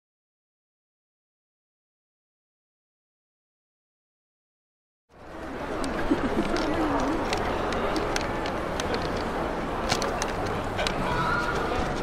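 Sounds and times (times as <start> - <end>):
outdoor background murmur: 5.1 - 12.0.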